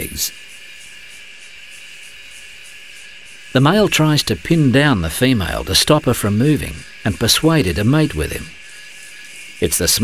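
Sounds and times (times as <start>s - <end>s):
faint high-pitched pulsing: 0.0s - 10.0s
outdoor background hiss: 0.0s - 10.0s.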